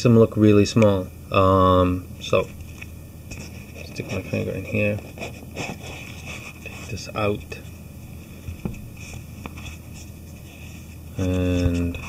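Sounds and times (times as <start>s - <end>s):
foam rubbing in cardboard box: 3.5s - 7.3s, 8.9s - 12.0s.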